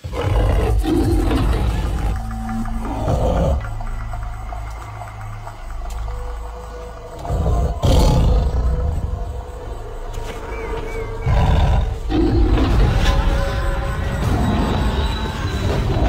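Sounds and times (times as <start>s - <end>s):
tiger roaring: 0.0s - 3.8s, 7.2s - 9.4s, 11.1s - 13.4s
dramatic music: 0.0s - 16.0s.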